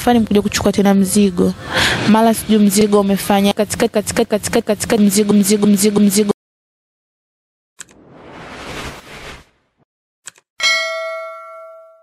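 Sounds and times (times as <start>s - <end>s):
bright bell ding: 10.6s - 12.0s.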